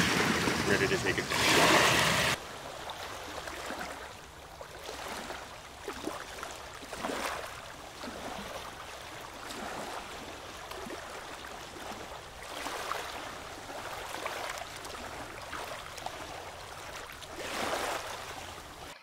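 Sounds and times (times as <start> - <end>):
water lapping and sloshing: 0.0 - 19.0.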